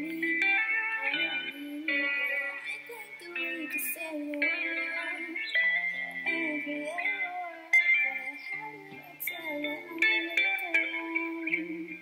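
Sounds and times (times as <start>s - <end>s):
music: 0.0s - 12.0s
woman singing into microphone: 0.0s - 12.0s.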